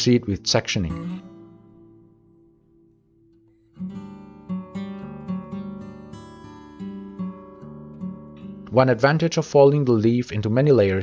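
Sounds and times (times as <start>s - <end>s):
strummed acoustic guitar chords: 0.4s - 9.3s.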